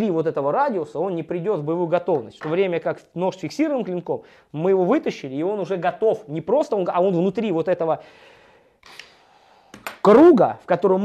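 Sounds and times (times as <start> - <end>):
man inhaling: 4.2 - 4.5, 8.0 - 9.8.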